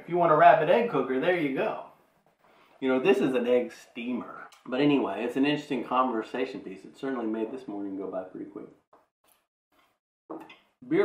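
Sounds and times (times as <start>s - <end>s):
man speaking: 0.0s - 2.0s, 2.8s - 8.8s.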